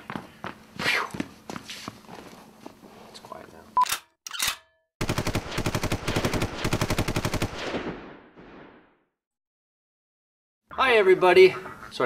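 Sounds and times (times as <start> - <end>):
automatic gunfire: 5.0 - 8.3.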